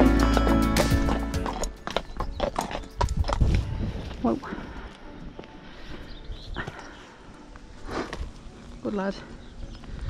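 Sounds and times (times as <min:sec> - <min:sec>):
horse hooves on tarmac: 0:00.0 - 0:06.0
background music: 0:00.0 - 0:10.0.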